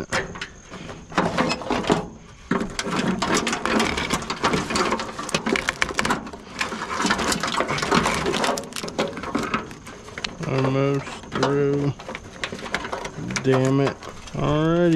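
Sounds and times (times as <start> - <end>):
plastic loom scraping against metal: 0.0 - 14.9.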